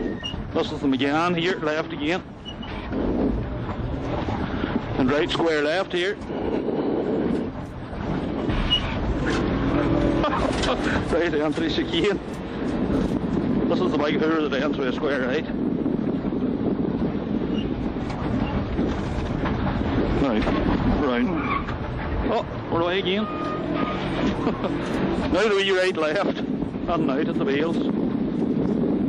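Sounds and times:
car interior road and engine rush: 0:00.0 - 0:29.0.

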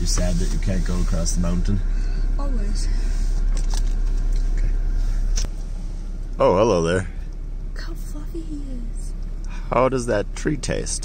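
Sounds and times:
road rumble inside car cabin: 0:00.0 - 0:11.0.

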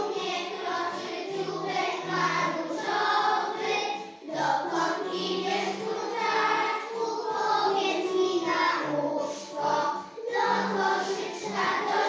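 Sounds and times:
children singing in unison: 0:00.0 - 0:12.0.

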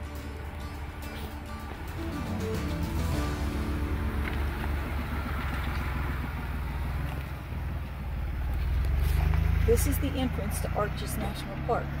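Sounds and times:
background music: 0:00.0 - 0:06.4
engine low rumble: 0:00.0 - 0:12.0.

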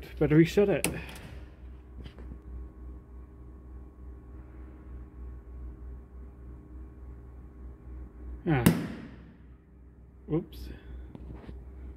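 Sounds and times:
low steady hum: 0:00.0 - 0:11.9.

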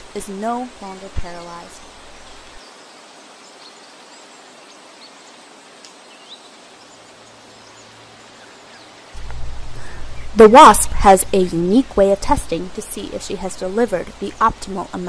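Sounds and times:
soft steady hiss: 0:00.0 - 0:15.0
low hum: 0:09.2 - 0:15.0.

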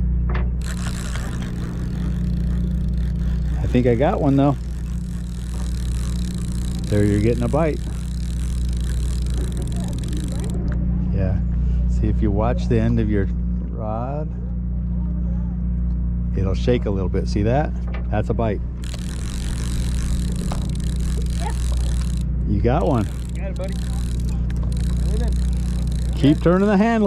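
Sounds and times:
boat engine droning: 0:00.0 - 0:13.3, 0:18.2 - 0:27.0.

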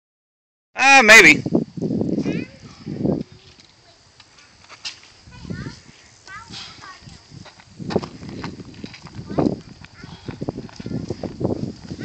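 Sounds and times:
footsteps on gravel: 0:03.2 - 0:12.0.

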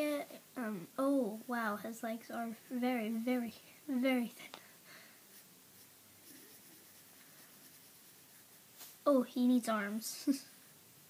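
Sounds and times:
pencil scratching on paper: 0:05.3 - 0:08.7.

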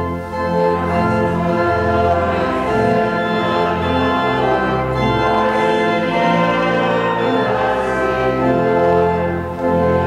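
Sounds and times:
church organ sustained chords: 0:00.0 - 0:10.0.

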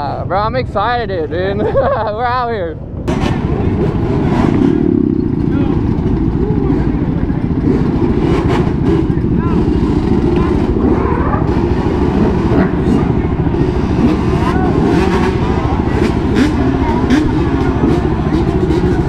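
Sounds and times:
crowd talking: 0:00.0 - 0:19.0
motorcycles and quads idling: 0:00.0 - 0:19.0.

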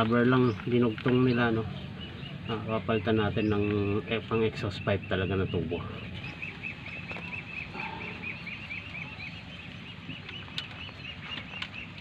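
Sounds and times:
bird chirping: 0:00.0 - 0:12.0.

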